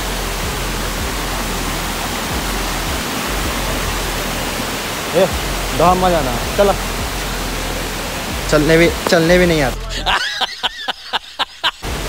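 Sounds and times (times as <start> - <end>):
water rushing over rocks: 0.0 - 12.0.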